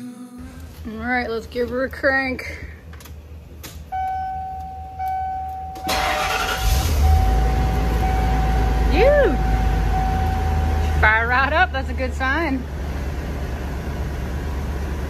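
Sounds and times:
bus engine cranking and running: 0:00.4 - 0:15.0
dashboard warning chime: 0:03.9 - 0:11.6.

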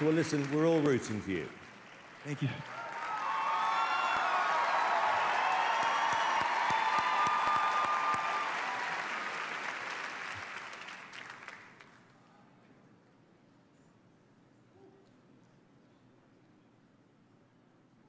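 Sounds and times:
audience applauding and cheering: 0:00.0 - 0:12.1.

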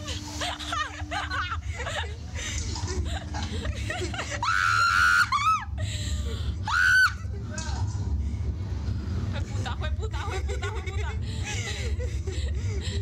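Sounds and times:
people laughing: 0:00.0 - 0:07.6, 0:09.6 - 0:13.0
steady low rumble: 0:00.0 - 0:13.0.

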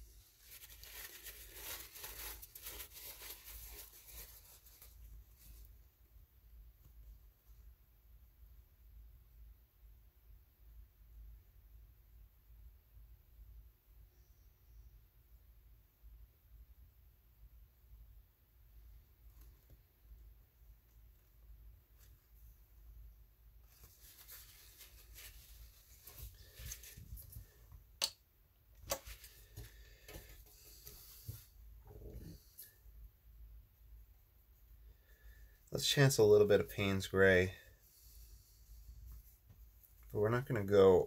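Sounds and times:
faint low hum: 0:00.0 - 0:41.0.

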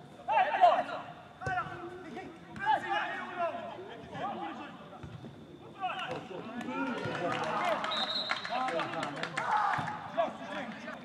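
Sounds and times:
players shouting: 0:09.3 - 0:11.0.

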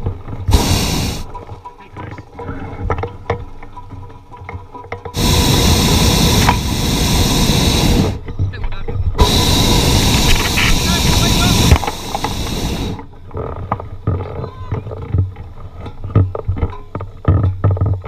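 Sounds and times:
propane burner blasts: 0:00.0 - 0:01.4, 0:05.1 - 0:08.3, 0:09.2 - 0:13.1.

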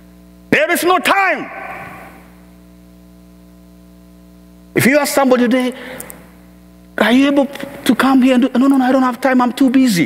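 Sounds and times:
electrical mains hum: 0:00.0 - 0:10.0
echo of spoken words: 0:00.5 - 0:02.5, 0:04.7 - 0:06.2, 0:06.9 - 0:10.0.

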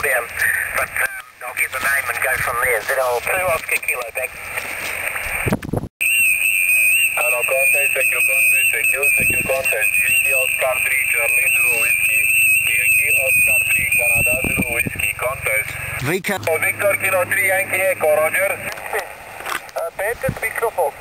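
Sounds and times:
indistinct radio voice: 0:00.0 - 0:04.4, 0:06.7 - 0:21.0
high-pitched carrier whistle: 0:06.0 - 0:10.7, 0:11.3 - 0:14.8.

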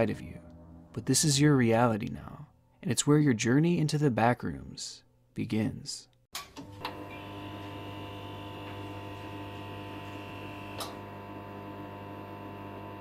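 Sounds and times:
fluorescent lights buzzing: 0:06.4 - 0:13.0.

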